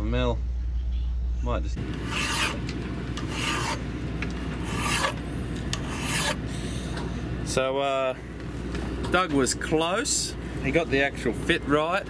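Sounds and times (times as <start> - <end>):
hand file rasping on steel: 1.9 - 2.6, 3.2 - 3.8, 4.6 - 6.4.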